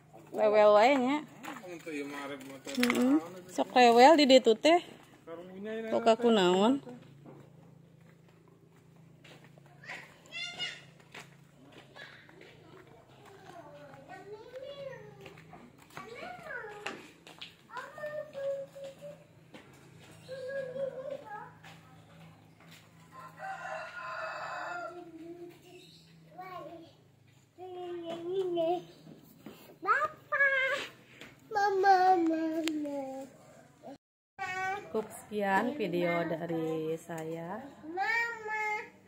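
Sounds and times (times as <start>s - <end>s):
rooster crowing: 23.0s - 25.2s.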